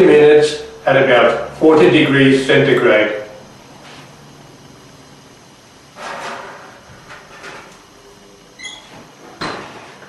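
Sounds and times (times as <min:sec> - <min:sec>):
plate scraping into oven: 0:06.0 - 0:07.7
oven door shutting: 0:06.0 - 0:07.8, 0:08.6 - 0:10.0.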